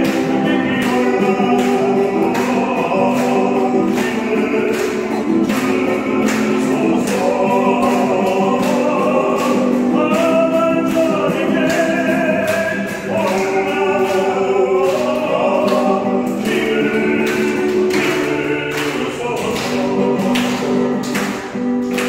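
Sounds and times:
strummed acoustic guitar: 0:00.0 - 0:22.0
voices singing: 0:00.0 - 0:22.0.

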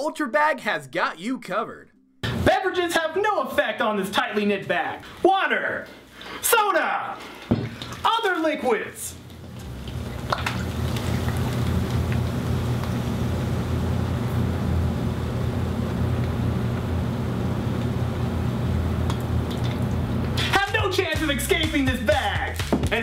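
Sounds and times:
steady low hum: 0:09.2 - 0:21.2
liquid pouring into plastic bag: 0:09.3 - 0:12.5.

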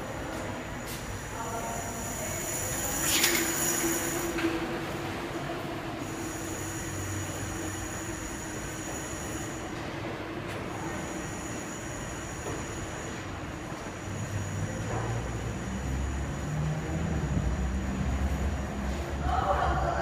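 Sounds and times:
subway train wheel squeal: 0:00.0 - 0:20.0.

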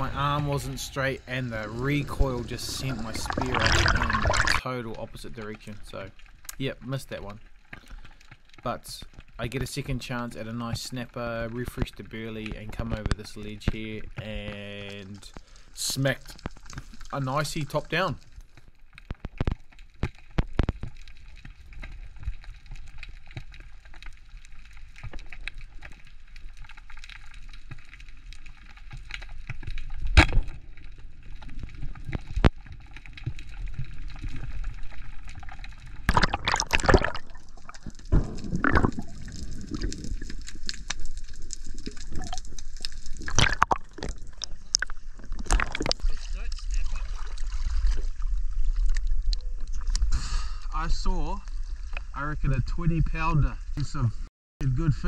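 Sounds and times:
muffled underwater gurgling: 0:00.0 - 0:04.6
water sloshing: 0:01.4 - 0:04.6, 0:34.2 - 0:49.0
sharp knocks underwater: 0:30.0 - 0:30.6, 0:36.1 - 0:40.4, 0:43.2 - 0:46.1.

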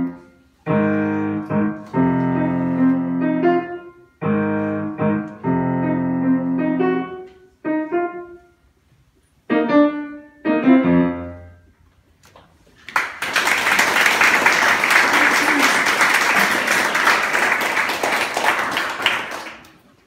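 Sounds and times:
grand piano chords: 0:00.0 - 0:08.8, 0:09.5 - 0:11.8
audience applauding: 0:12.8 - 0:20.0.

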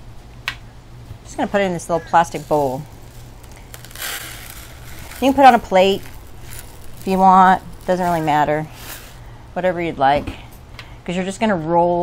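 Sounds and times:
sugar pouring into plastic bowl: 0:02.0 - 0:09.3.

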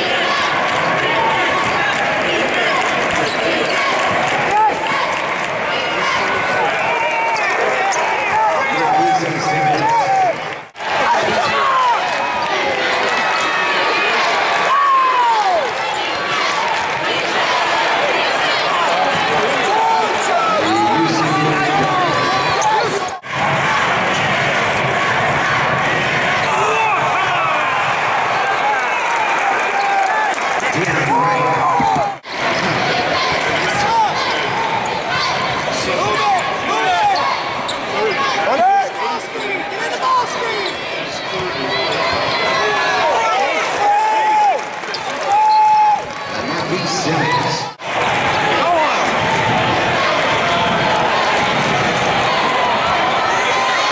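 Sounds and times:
arena voices: 0:00.0 - 0:53.9.

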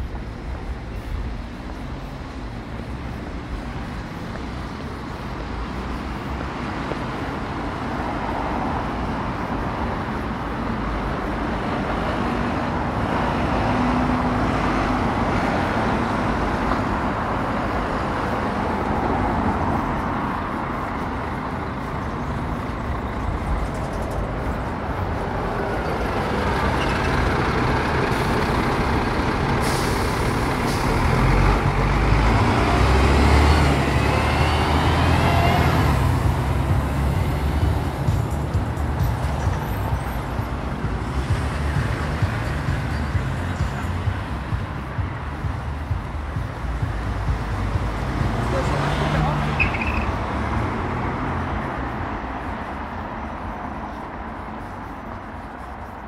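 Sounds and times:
bus engine rumble: 0:00.0 - 0:56.0
road traffic passing: 0:00.0 - 0:56.0.

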